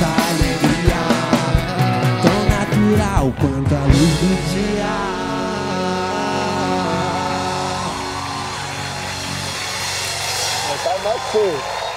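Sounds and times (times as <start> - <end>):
man singing a long note: 0.0 - 8.4
live rock band final chord: 0.0 - 11.3.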